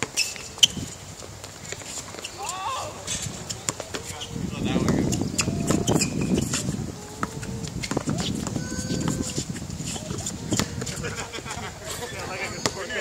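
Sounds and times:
sneakers squeaking on court: 0:00.0 - 0:13.0
basketball bouncing on hard court: 0:04.8 - 0:06.2, 0:07.1 - 0:09.3.

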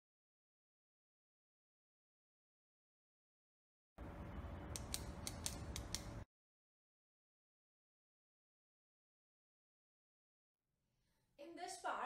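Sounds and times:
sharp clicks: 0:04.7 - 0:06.2.

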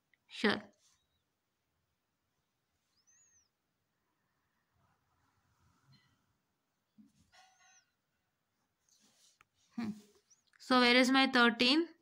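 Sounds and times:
faint high-pitched chirp: 0:02.4 - 0:04.6, 0:07.3 - 0:08.3, 0:09.8 - 0:10.7.

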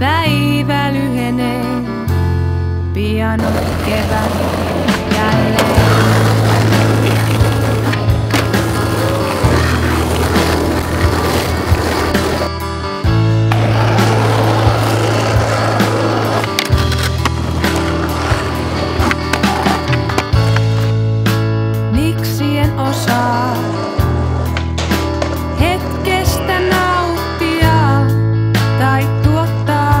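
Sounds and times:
skateboard clacks: 0:03.4 - 0:12.5, 0:13.5 - 0:20.9, 0:23.1 - 0:27.6
skateboard wheels rolling on asphalt: 0:03.4 - 0:21.0, 0:22.7 - 0:28.1.

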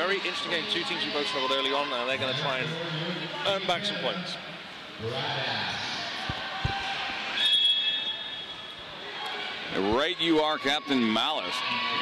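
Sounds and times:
dull thumps from skates: 0:06.2 - 0:07.2
referee's whistle blast: 0:07.4 - 0:08.8.

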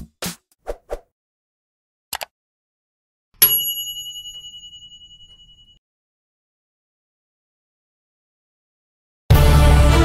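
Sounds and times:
high-pitched bell ding: 0:03.4 - 0:05.8.

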